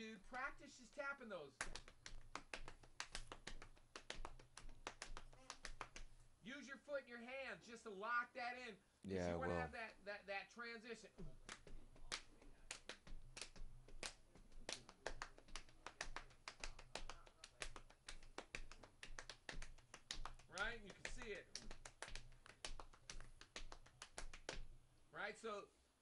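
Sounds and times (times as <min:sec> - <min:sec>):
hands tapping drum rhythm: 0:01.6 - 0:06.2, 0:11.1 - 0:24.8.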